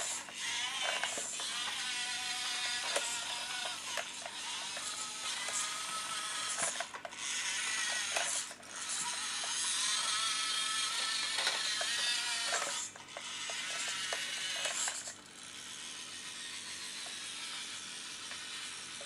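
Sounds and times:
toy tractor motor whining: 0.0 - 19.0.

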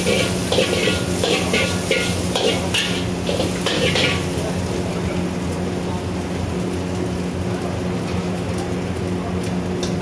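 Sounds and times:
metal spatula scraping wok: 0.0 - 4.3.

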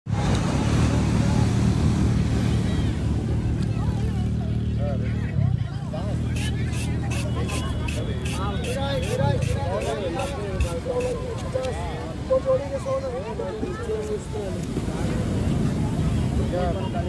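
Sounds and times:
voices in background: 0.1 - 17.0.

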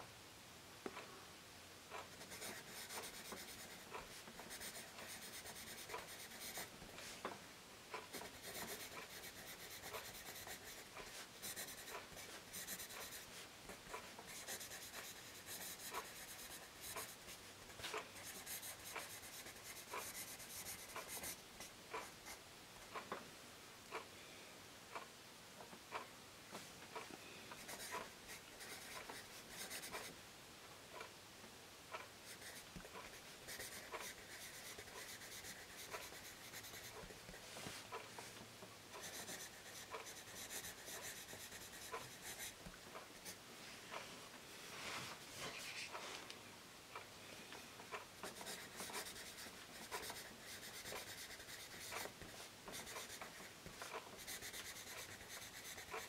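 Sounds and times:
light pencil ticks: 1.9 - 6.7, 7.9 - 17.3, 17.9 - 22.4, 31.9 - 37.1, 38.9 - 43.4, 47.9 - 56.0
pencil scratching on paper: 1.9 - 7.1, 8.0 - 22.4, 27.6 - 30.1, 32.3 - 38.0, 38.9 - 42.6, 48.2 - 56.0.

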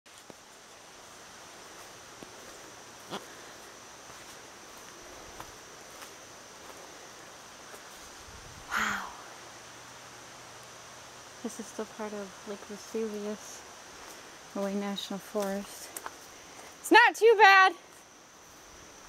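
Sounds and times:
footsteps on dirt trail: 0.1 - 8.5, 13.9 - 16.8
faint steady hiss: 0.1 - 19.0.

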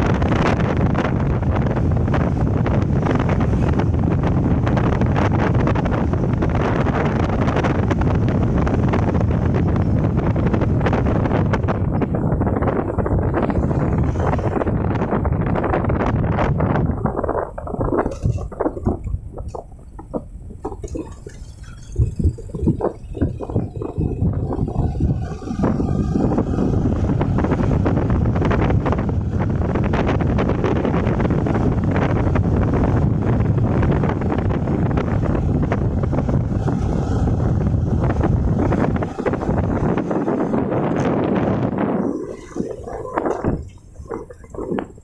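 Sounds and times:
wind rushing over microphone: 0.0 - 45.0
knocks and bumps: 10.5 - 29.0.

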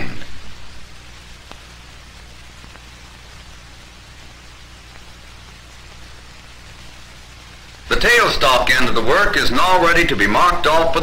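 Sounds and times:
film soundtrack hiss and hum: 0.0 - 11.0
faint clicks: 1.4 - 3.5, 4.8 - 5.2.

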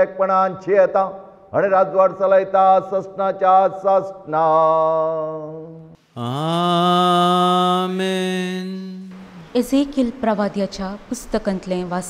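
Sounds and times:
priest chanting and singing: 0.0 - 9.4.

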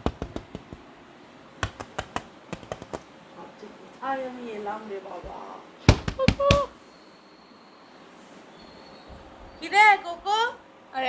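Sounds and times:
taps against window pane: 0.0 - 0.9, 1.6 - 3.1.

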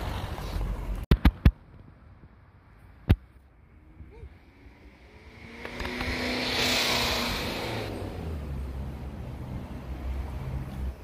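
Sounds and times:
car passing by: 3.6 - 11.0.

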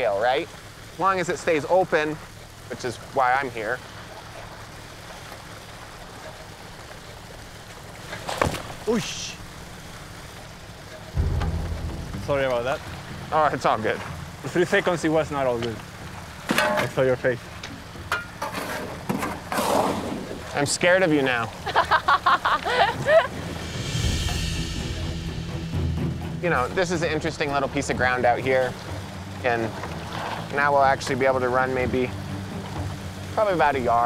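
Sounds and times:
water rushing through sluice box: 0.0 - 11.2, 11.9 - 23.6, 26.4 - 34.0
gravel carried by water: 0.0 - 34.0
steady low hum: 7.4 - 16.4, 22.7 - 30.1.

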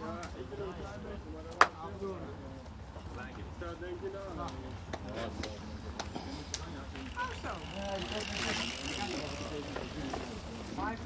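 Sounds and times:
bike tyres on wet grass: 3.7 - 11.0.

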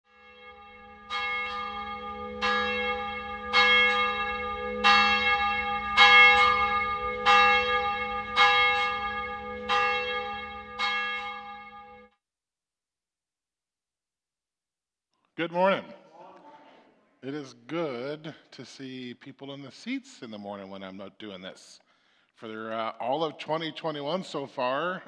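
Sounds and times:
church bell tolling: 0.1 - 12.1.

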